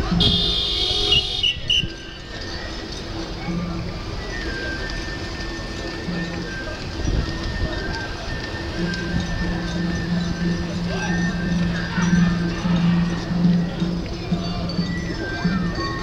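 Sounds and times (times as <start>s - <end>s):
street crowd noise: 0.0s - 16.0s.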